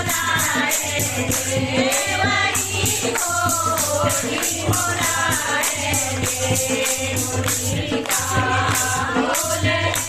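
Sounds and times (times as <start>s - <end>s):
jingling tambourine percussion: 0.0s - 10.0s
people singing a devotional song: 0.0s - 10.0s.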